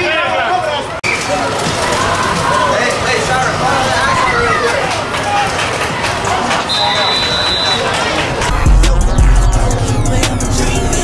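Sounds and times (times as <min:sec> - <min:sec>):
crowd noise: 0:00.0 - 0:11.0
spectators yelling and cheering: 0:00.0 - 0:11.0.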